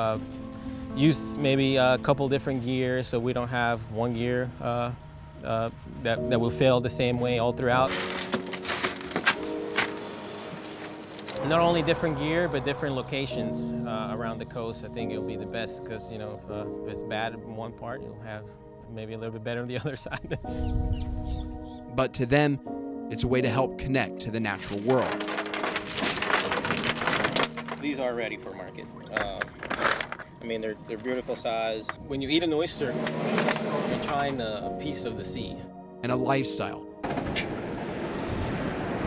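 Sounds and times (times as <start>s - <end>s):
soft background music: 0.0s - 37.8s
oyster shells clattering: 7.9s - 11.4s, 24.7s - 28.1s, 28.8s - 30.4s
oyster shells clattering on wood: 25.0s - 28.0s, 29.1s - 30.4s.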